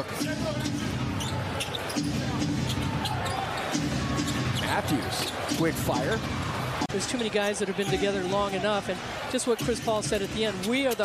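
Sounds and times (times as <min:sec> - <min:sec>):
crowd noise: 0:00.0 - 0:11.0
basketball bouncing on court: 0:00.2 - 0:06.9.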